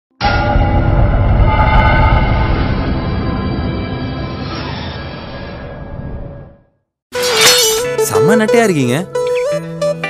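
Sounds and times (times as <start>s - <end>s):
low rumble: 0.2s - 4.2s.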